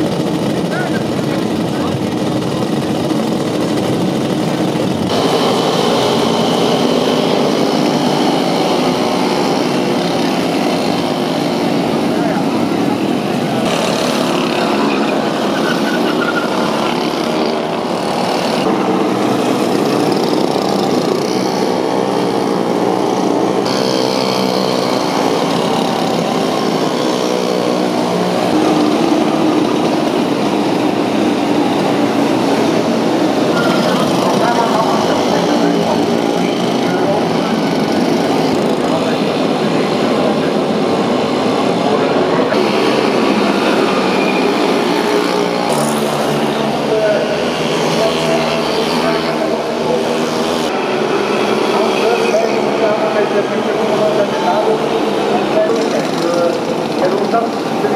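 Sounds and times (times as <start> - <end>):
small motorbike engines passing: 0.0 - 57.9.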